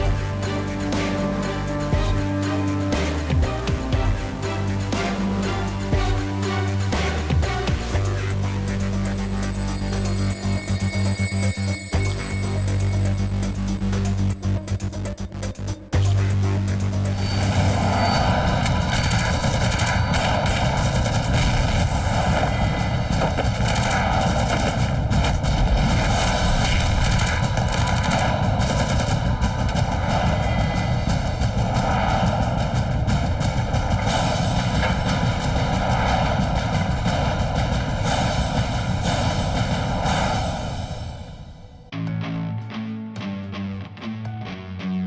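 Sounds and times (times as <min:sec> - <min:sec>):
action music: 0:00.0 - 0:45.0
rapid automatic gunfire: 0:18.8 - 0:21.8, 0:23.4 - 0:29.4.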